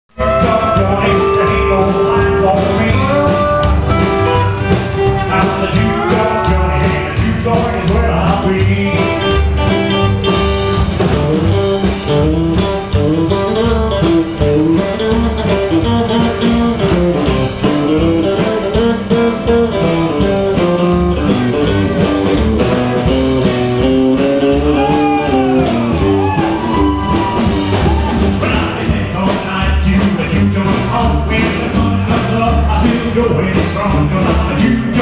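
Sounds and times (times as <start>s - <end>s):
drum kit: 0.1s - 35.0s
picked guitar lead melody: 0.1s - 35.0s
upright bass: 0.1s - 35.0s.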